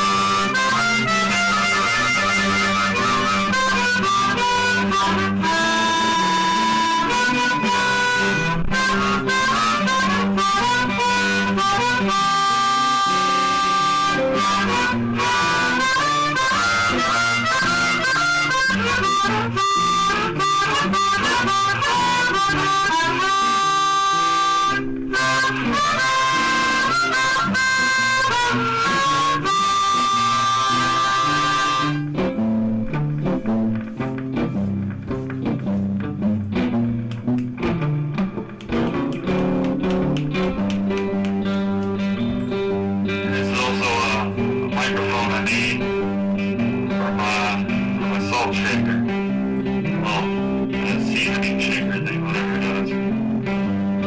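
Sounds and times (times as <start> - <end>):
guitar backing track: 0.0 - 54.0
harmonica playing blues: 0.0 - 54.0.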